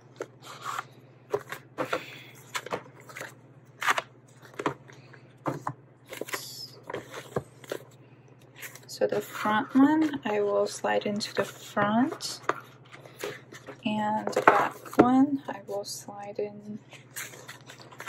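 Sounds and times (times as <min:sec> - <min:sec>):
low steady hum: 0:00.0 - 0:18.0.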